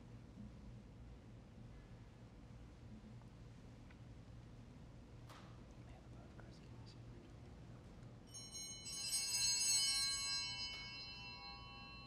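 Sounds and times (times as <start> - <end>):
altar bells jangling: 8.3 - 12.0.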